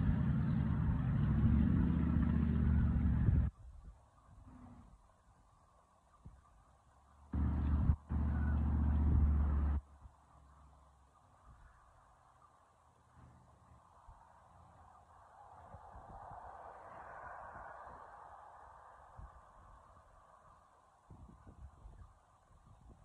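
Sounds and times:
wind buffeting microphone: 0:15.6 - 0:18.2, 0:21.0 - 0:23.0.

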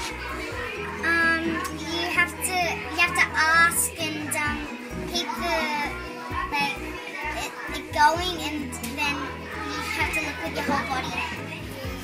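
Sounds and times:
background music: 0:00.0 - 0:12.0
children talking: 0:00.0 - 0:12.0.

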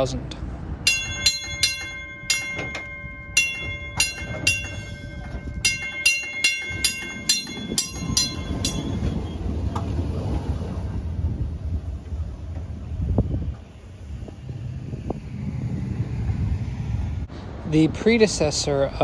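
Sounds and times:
streetcar rumbling: 0:00.0 - 0:19.0
streetcar gong clanging: 0:00.7 - 0:10.8.

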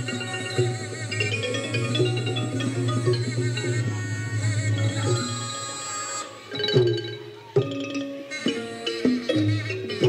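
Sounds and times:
wavering melody: 0:00.0 - 0:10.0.

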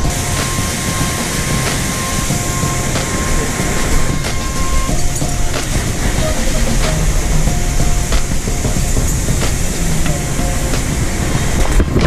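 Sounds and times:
mountain torrent rushing: 0:00.0 - 0:12.0.

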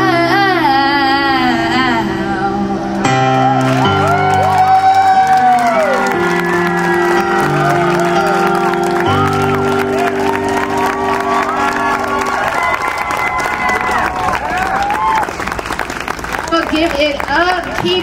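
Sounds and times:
piano playing sustained chords: 0:00.0 - 0:16.5
audience clapping and cheering: 0:03.2 - 0:18.0.

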